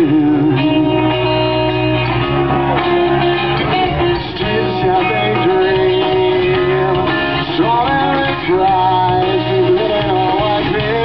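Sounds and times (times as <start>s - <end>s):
bending guitar notes: 0.0s - 11.0s
live rock band playing: 0.0s - 11.0s.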